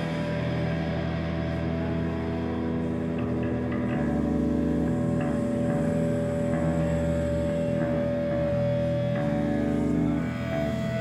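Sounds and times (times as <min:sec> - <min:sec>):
electric guitars and bass chord: 0:00.0 - 0:11.0.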